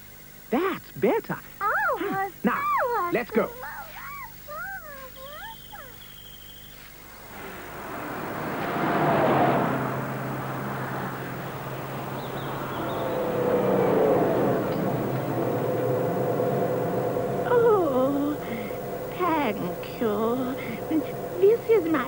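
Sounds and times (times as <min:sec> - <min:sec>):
truck engine approaching: 0:06.9 - 0:22.0
cartoon rushing engine noise: 0:07.1 - 0:22.0.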